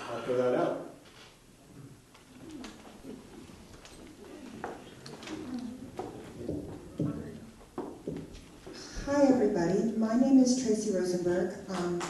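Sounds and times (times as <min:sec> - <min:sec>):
low indistinct murmur: 0:01.0 - 0:08.4.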